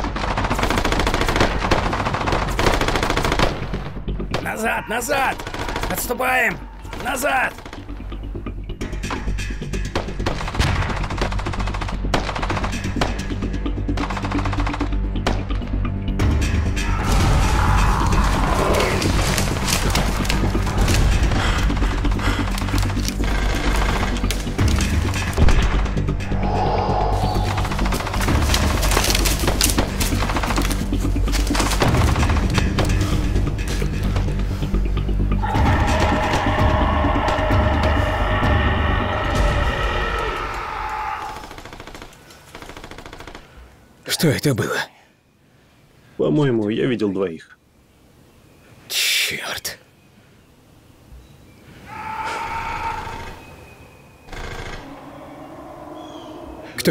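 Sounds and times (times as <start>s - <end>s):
dramatic film score music: 0.0s - 43.3s, 51.9s - 56.9s.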